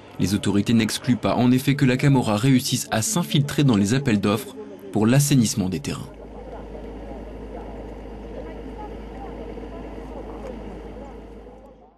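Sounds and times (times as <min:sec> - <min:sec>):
faint indistinct voices: 0:00.0 - 0:11.9.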